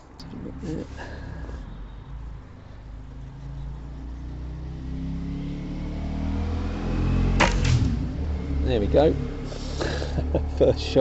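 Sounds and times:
air rifle shot: 7.4s - 8.0s
pellet striking metal target: 7.4s - 8.0s.

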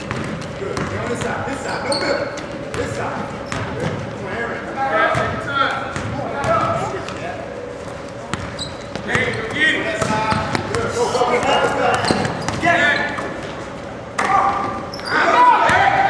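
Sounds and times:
basketball bouncing on court: 0.0s - 1.8s, 2.4s - 4.0s, 5.0s - 7.2s, 8.3s - 12.6s
voices shouting and calling: 14.2s - 16.0s.

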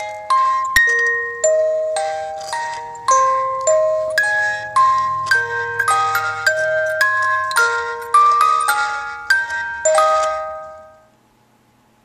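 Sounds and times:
music box note ringing: 0.0s - 11.1s.

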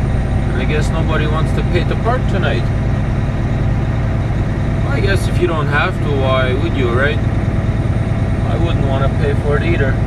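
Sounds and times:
truck diesel engine hum: 0.0s - 10.0s.

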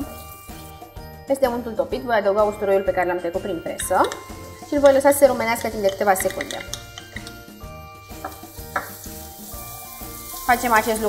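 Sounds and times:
garlic sizzling in a frying pan: 0.0s - 1.1s, 3.9s - 11.0s
wooden spoon stirring: 3.8s - 7.5s.

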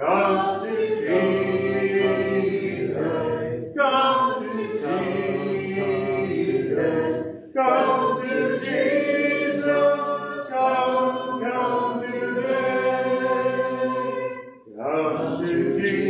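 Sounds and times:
congregation singing a hymn: 0.0s - 16.0s.

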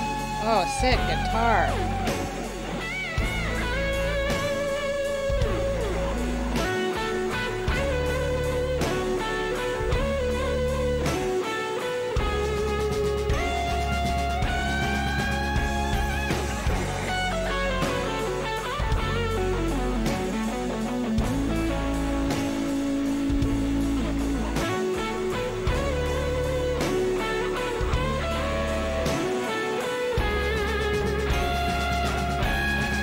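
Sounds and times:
bass guitar: 0.0s - 33.0s
drums: 0.0s - 33.0s
electric guitar solo: 0.0s - 33.0s.

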